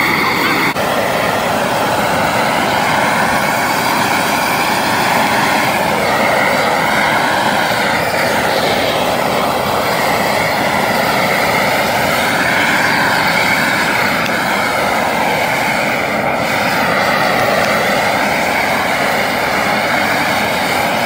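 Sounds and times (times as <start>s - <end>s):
torch flame rushing hiss: 0.0s - 21.0s.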